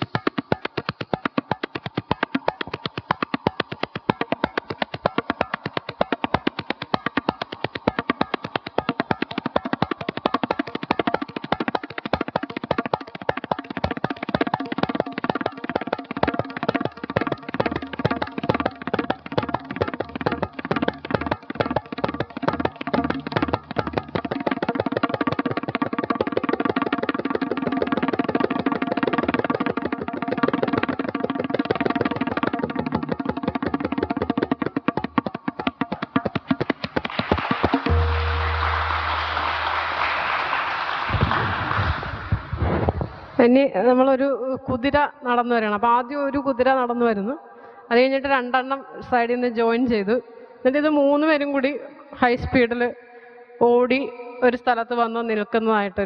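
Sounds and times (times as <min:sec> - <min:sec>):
tabla played rapidly: 0:00.0 - 0:41.4.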